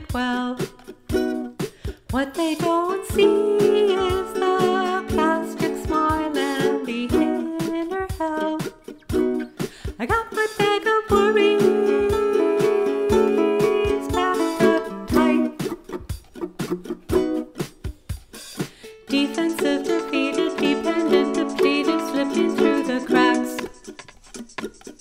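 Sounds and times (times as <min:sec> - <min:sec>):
ukulele strummed: 0:00.0 - 0:25.0.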